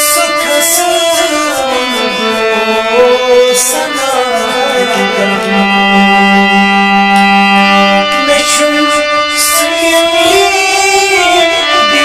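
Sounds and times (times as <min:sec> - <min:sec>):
harmonium holding steady note: 0:00.0 - 0:12.0.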